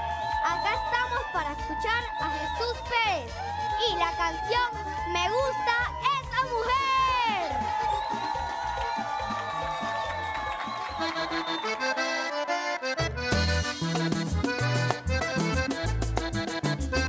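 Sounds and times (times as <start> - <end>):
bass and percussion: 0.0 - 11.9, 12.9 - 17.0
button accordion playing: 0.3 - 7.1, 7.8 - 17.0.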